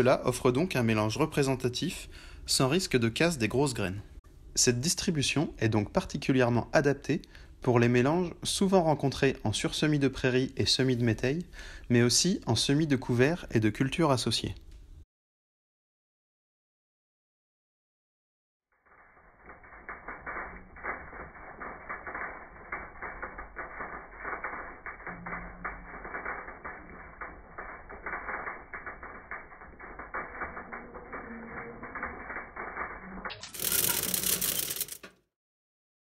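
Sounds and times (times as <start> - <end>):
seed drill mechanism clicking and rattling: 19.4 - 35.2.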